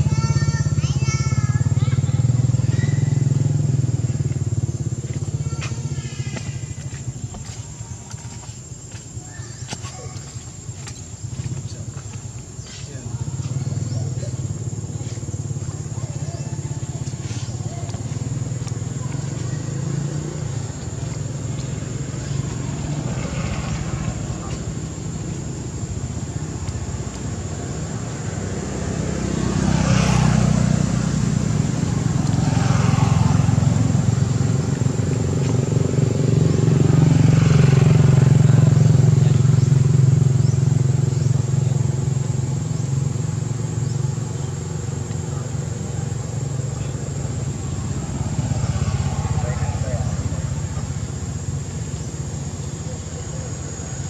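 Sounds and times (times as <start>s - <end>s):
vehicle engine passing by: 0.0s - 54.0s.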